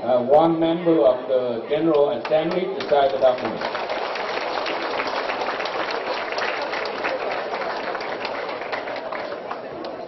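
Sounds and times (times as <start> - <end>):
people clapping: 1.9 - 10.0.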